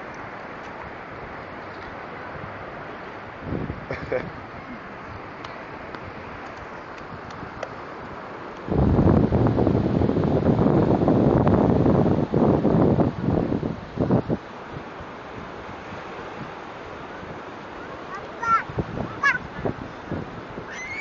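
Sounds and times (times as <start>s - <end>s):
surf rushing: 0.0s - 21.0s
wind buffeting microphone: 3.2s - 5.3s, 5.9s - 21.0s.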